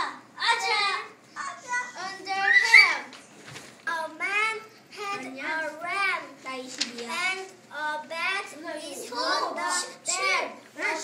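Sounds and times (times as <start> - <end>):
child reading aloud: 0.0 - 11.0.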